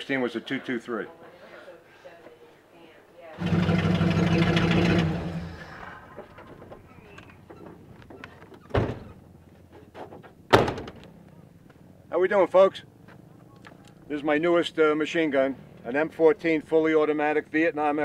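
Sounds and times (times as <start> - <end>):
truck door thuds: 8.5 - 9.2, 9.8 - 11.1.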